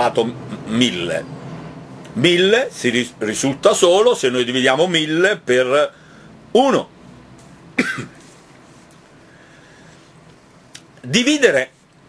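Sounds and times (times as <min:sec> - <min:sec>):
man coughing: 0:07.8 - 0:08.3.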